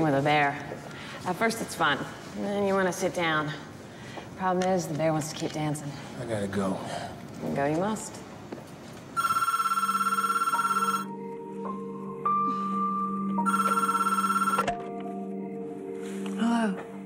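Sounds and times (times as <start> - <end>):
telephone ringing: 9.2 - 11.2, 13.4 - 14.8.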